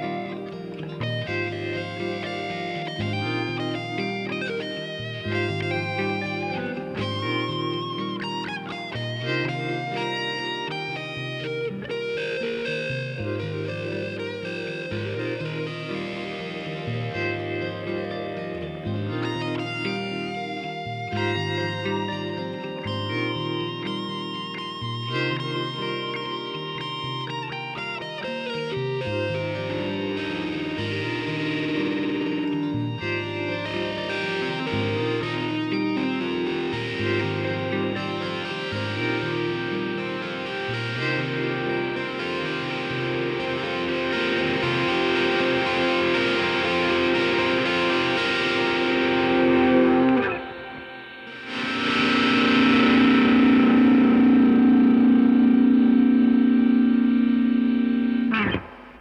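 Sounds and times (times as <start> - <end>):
looped guitar backing part: 0.0 - 59.0
electric guitar held note: 28.9 - 59.0.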